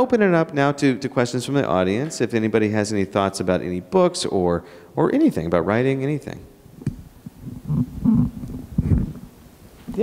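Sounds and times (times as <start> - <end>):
microphone handling noise: 6.8 - 10.0.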